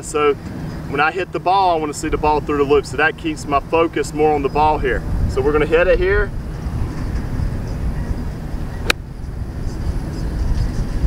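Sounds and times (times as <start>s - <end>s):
golf club striking ball: 8.8s - 9.0s.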